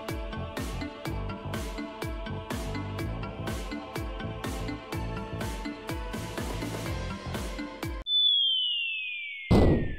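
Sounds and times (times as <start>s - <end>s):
music with a steady beat: 0.0s - 8.1s
high electronic tone gliding down: 8.1s - 9.9s.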